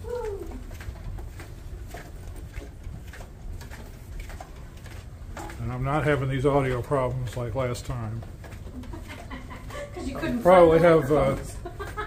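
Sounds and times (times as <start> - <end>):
footsteps on carpet: 0.0 - 12.0.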